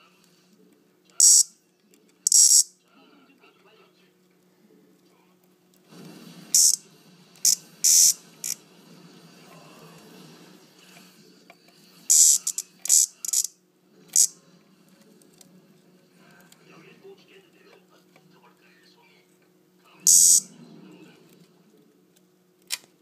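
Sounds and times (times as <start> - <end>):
cicada buzzing squawks: 1.2 - 1.5, 2.3 - 2.7, 6.6 - 6.8, 7.5 - 8.6, 12.1 - 13.5, 20.1 - 20.5.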